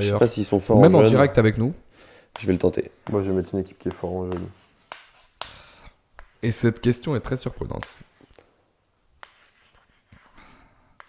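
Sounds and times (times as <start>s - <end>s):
chalk scratching on slate: 3.2s - 7.0s, 9.2s - 11.0s.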